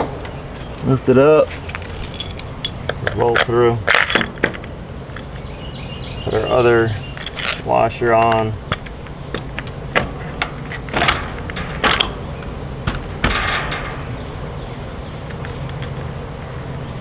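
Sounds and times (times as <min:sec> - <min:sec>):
steady low hum: 0:00.0 - 0:17.0
hub scraping: 0:01.4 - 0:14.6
metal washer and bolt clinking: 0:01.6 - 0:14.1, 0:15.3 - 0:16.1.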